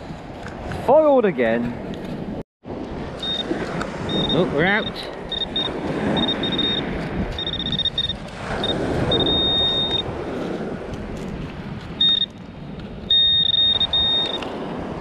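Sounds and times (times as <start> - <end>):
metal detector high-pitched beeping: 3.2 - 3.5, 4.1 - 10.1, 12.0 - 12.4, 13.1 - 14.4.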